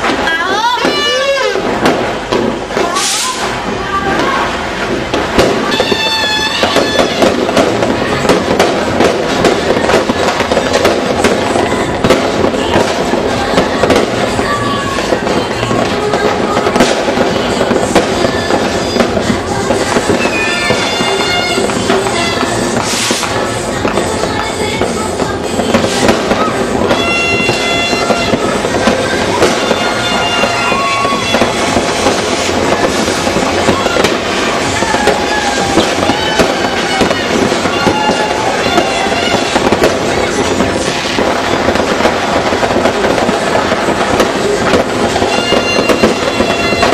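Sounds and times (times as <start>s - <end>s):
firecrackers crackling: 0.0s - 46.9s
sharp firework bangs: 0.0s - 46.9s.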